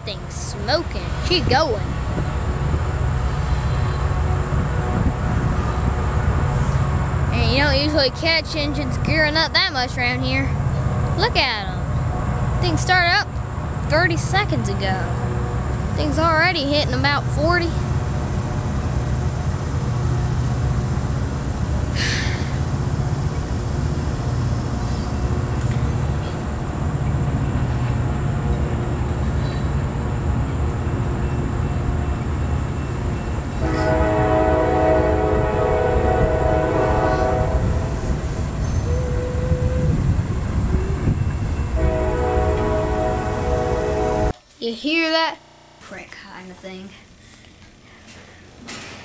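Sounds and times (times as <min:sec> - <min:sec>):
freight train rumbling: 0:00.0 - 0:49.0
locomotive horn blasts: 0:33.6 - 0:38.1, 0:41.7 - 0:44.4.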